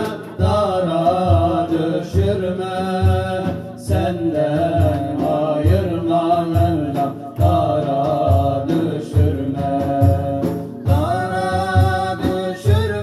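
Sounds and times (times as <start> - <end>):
frame drum thumps: 0.0 - 13.0
men singing a hymn: 0.0 - 13.0.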